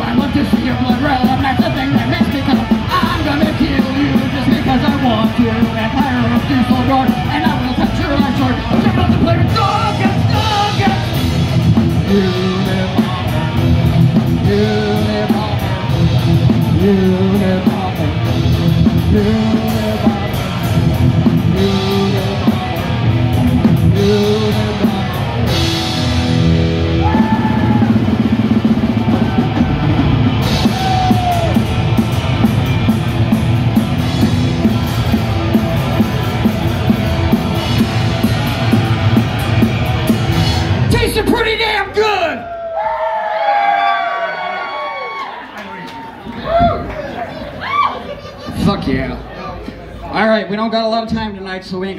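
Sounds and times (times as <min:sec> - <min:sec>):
drums and cymbals: 0:00.0 - 0:42.2
heavy guitar: 0:00.0 - 0:42.6
shouted vocals: 0:26.8 - 0:28.2, 0:29.0 - 0:31.8, 0:40.9 - 0:48.2.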